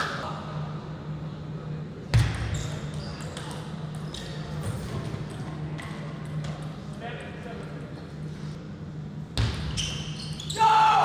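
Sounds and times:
low hum in hall: 0.0s - 11.0s.

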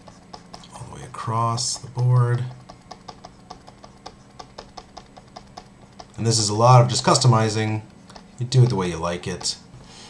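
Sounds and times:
light computer mouse clicking: 1.7s - 9.6s.

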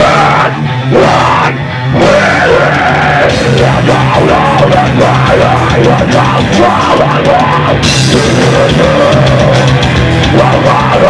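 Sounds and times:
drum kit: 0.0s - 11.0s
electric guitar: 0.0s - 11.0s
rock band playing: 0.0s - 11.0s.

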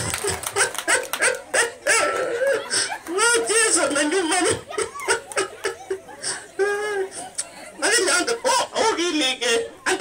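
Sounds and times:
woman laughing: 4.7s - 7.2s.

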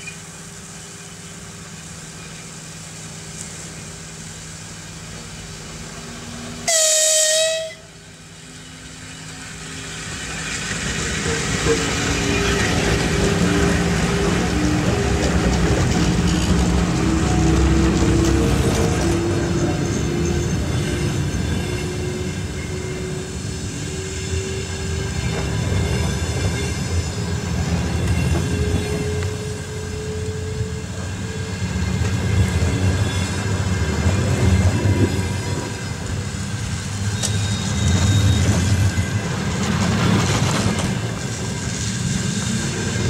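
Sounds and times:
train wheels rumbling on rails: 0.0s - 43.0s.

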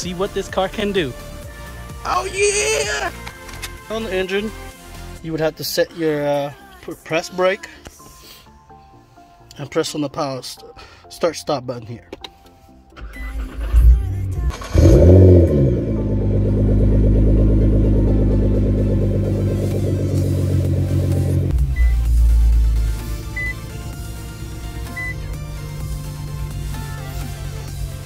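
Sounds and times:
car engine idling: 13.0s - 28.0s
car engine starting and revving: 13.0s - 28.0s.

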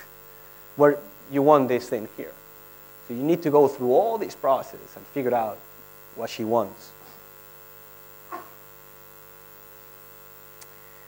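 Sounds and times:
electrical mains hum: 0.0s - 11.0s
faint click: 10.6s - 10.8s.

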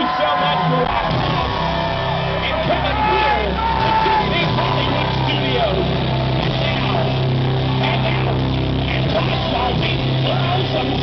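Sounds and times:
crowd voices: 0.0s - 11.0s
live rock band playing: 0.6s - 11.0s
held bass notes: 0.9s - 11.0s.

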